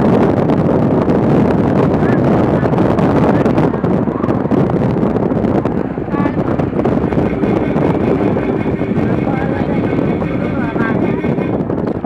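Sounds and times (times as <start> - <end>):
vehicle road noise: 0.0 - 12.0
wind buffeting microphone: 0.0 - 12.0
faint voices: 1.8 - 11.8.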